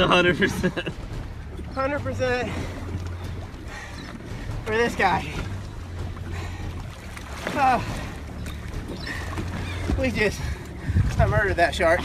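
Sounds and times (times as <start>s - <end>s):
boat engine idling: 0.0s - 12.0s
water washing against hull: 0.0s - 12.0s.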